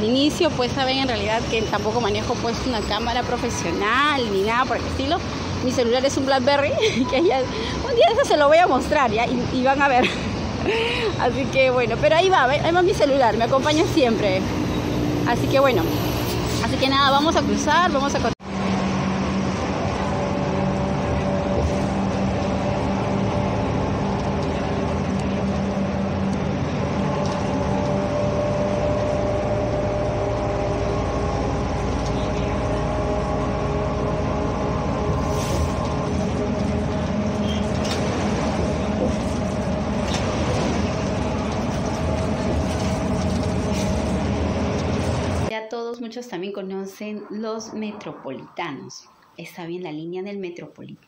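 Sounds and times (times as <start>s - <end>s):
bus engine drone: 0.0s - 45.5s.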